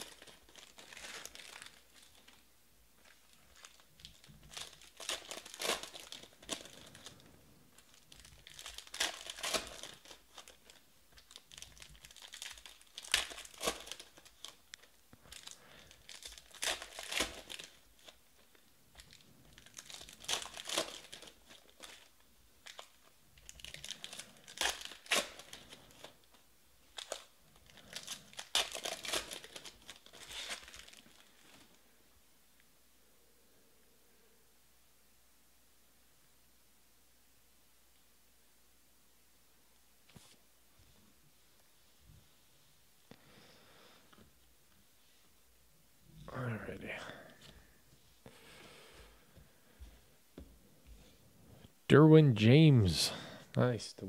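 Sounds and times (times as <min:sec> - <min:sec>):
foil packs being torn open: 0:00.0 - 0:02.4, 0:03.5 - 0:07.2, 0:07.8 - 0:18.2, 0:19.1 - 0:26.3, 0:26.9 - 0:31.5
wrappers crinkling: 0:00.0 - 0:31.8.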